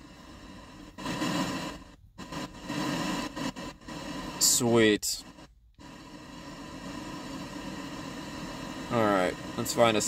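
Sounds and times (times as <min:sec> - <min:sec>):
radio static hiss: 0:00.0 - 0:10.0.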